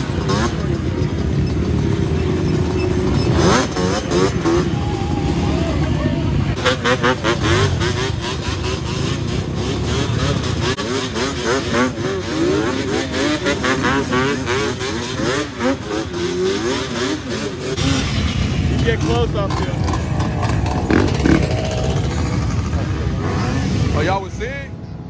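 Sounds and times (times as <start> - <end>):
dirt bike engines revving: 0.0 - 25.0.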